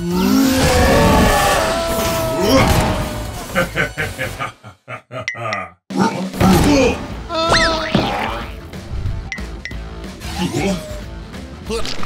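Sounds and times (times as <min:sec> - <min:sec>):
background music: 0:00.0 - 0:04.7, 0:05.5 - 0:12.0
cartoon character grunting: 0:01.2 - 0:03.5.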